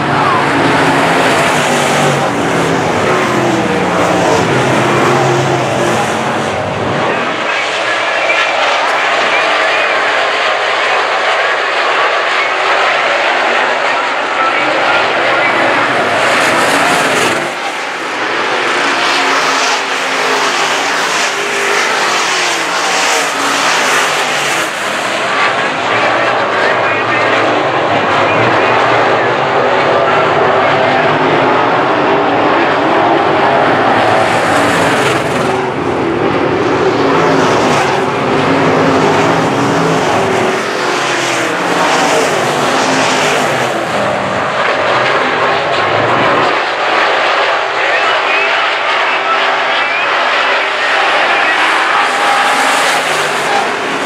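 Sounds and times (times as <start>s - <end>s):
race car engines at full throttle: 0.0s - 54.0s.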